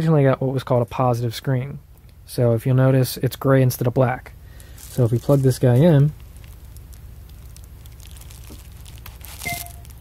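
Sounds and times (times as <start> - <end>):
cable plugging crinkle and scrape: 4.7 - 10.0.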